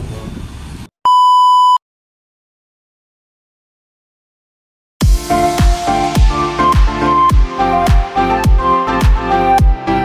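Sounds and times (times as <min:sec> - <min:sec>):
electronic test tone beep: 0:01.0 - 0:01.8.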